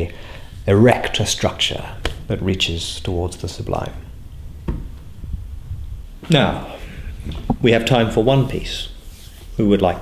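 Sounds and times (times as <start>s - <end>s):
low steady rumble: 0.0s - 9.2s
soft knock: 4.6s - 5.0s.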